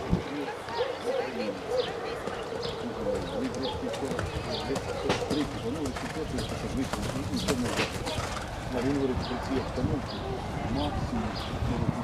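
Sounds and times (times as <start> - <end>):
birds calling: 0.0 - 12.0
people talking indistinctly: 0.0 - 12.0
pigeons cooing: 0.4 - 11.0.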